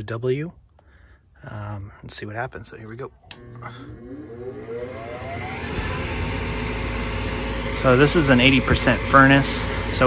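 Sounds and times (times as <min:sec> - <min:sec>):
furnace motor whining: 0:03.2 - 0:10.0.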